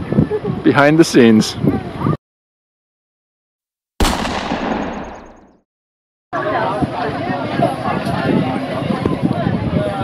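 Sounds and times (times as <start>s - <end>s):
impact boom: 4.0s - 5.6s.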